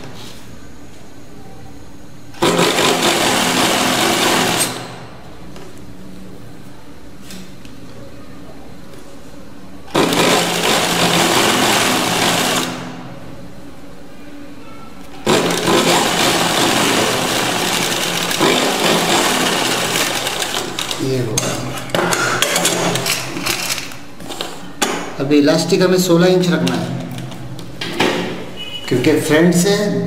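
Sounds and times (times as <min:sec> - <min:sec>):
sewing machine stitching: 0:02.4 - 0:05.0, 0:09.9 - 0:12.9, 0:15.2 - 0:21.0.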